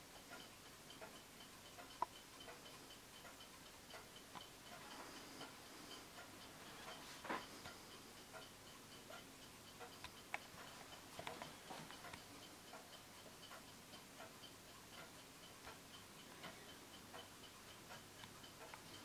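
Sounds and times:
clock ticking faintly: 0.0 - 19.0.

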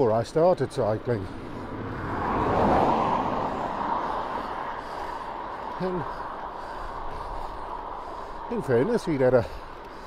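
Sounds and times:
steady rush of noise: 0.9 - 10.0
car driving away: 1.5 - 4.9.

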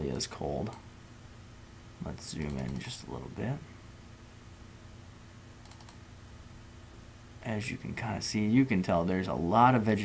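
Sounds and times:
low hum of room tone: 0.0 - 10.0
faint computer clicks: 0.6 - 0.9, 2.1 - 2.9, 5.6 - 6.0.

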